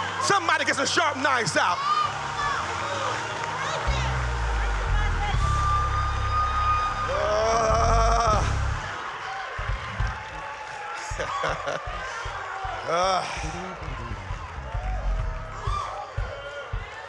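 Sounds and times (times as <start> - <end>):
deep bass notes: 3.8 - 8.9, 12.9 - 16.9.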